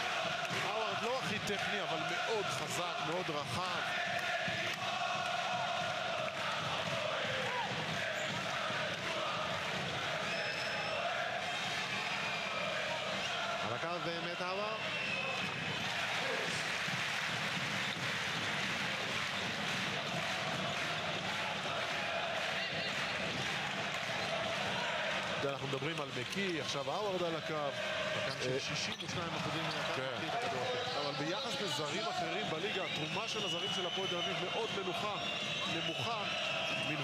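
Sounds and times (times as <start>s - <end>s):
crowd chanting and singing: 0.0s - 37.0s.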